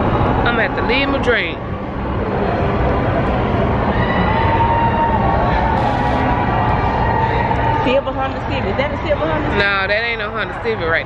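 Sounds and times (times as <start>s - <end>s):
street crowd hubbub: 0.0s - 11.0s
faint held tone: 5.8s - 6.3s.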